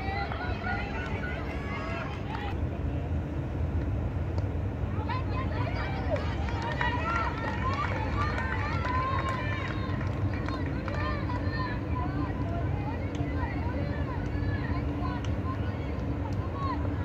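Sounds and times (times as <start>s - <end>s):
people talking: 0.0s - 2.9s, 4.9s - 17.0s
low outdoor rumble: 0.0s - 17.0s.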